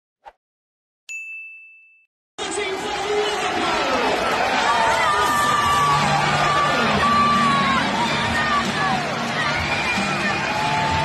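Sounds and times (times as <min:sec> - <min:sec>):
bright ding: 0:01.1 - 0:02.1.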